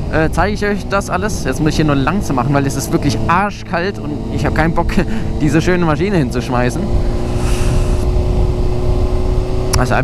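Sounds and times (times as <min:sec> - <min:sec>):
motorcycle engine running: 0:00.0 - 0:10.0
wind on microphone: 0:06.8 - 0:09.7.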